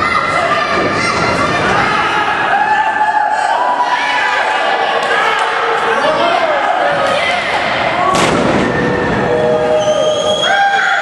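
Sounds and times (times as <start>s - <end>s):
voices shouting: 0.0s - 11.0s.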